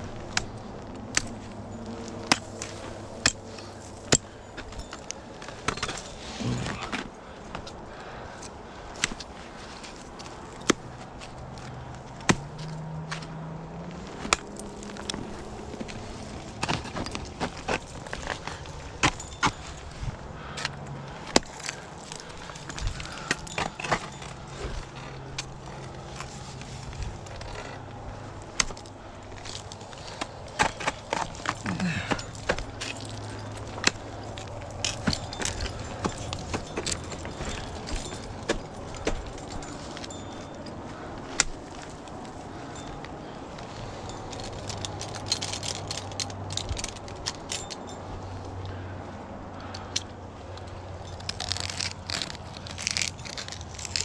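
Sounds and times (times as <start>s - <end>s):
ice axes and crampons striking ice: 0.0s - 48.1s, 49.7s - 54.0s
climbing gear clinking: 0.0s - 54.0s.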